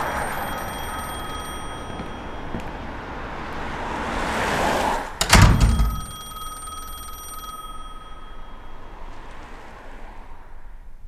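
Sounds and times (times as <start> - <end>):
bell ringing: 0.0 - 3.0, 5.2 - 9.1.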